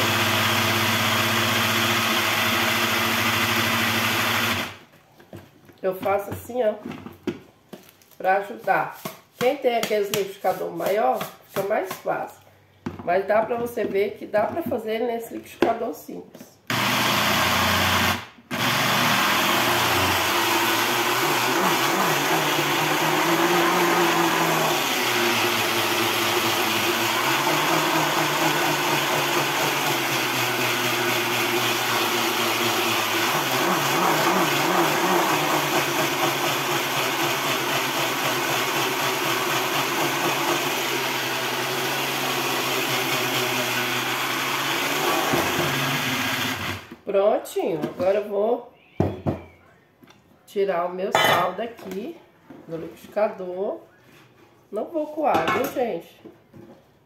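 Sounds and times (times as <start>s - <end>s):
blender motor whirring: 0.0s - 4.8s, 16.7s - 47.0s.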